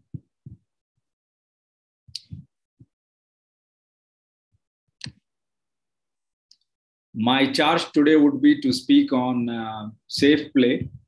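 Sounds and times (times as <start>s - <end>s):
soft low thumps on desk: 10.1s - 11.0s.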